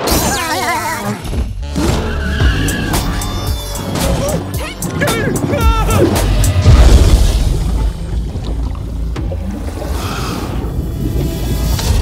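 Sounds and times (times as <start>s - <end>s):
water rushing and sloshing: 3.9s - 12.0s
low rumble: 5.5s - 12.0s.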